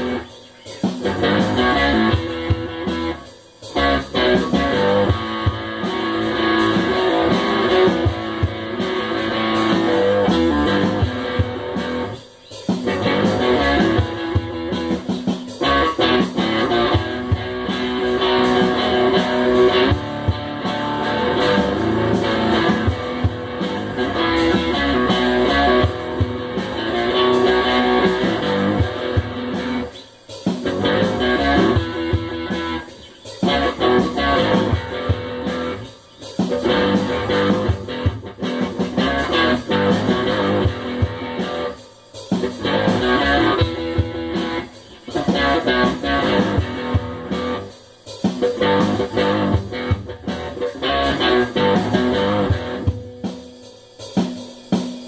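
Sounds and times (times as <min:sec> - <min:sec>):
guitar playing: 0:00.0 - 0:53.7
drum beat: 0:00.0 - 0:55.0.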